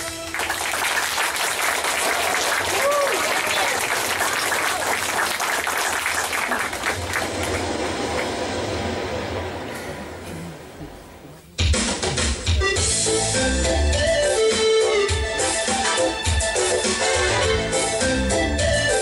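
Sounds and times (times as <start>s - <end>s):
audience applauding: 0.0s - 9.3s.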